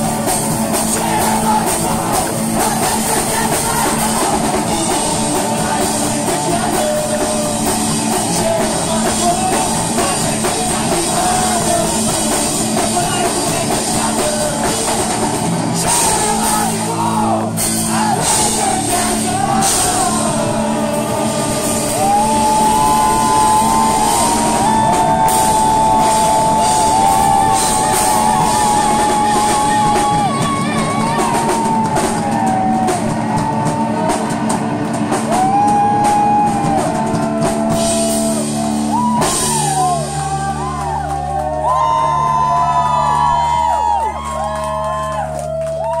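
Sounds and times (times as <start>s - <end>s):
crowd shouting: 0.0s - 46.0s
drums: 0.0s - 46.0s
electric guitar: 0.0s - 46.0s.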